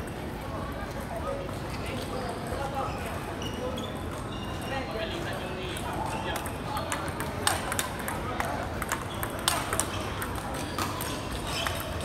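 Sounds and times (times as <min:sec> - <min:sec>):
busy hall noise: 0:00.0 - 0:12.0
table tennis ball clicks: 0:06.3 - 0:12.0.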